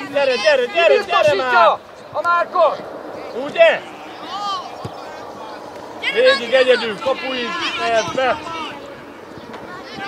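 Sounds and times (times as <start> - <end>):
football being kicked: 4.8 - 5.1.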